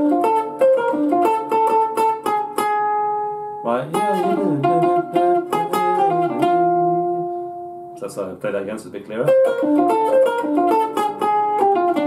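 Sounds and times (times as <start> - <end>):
clean electric guitar swing phrase: 0.0 - 8.0, 9.3 - 12.0.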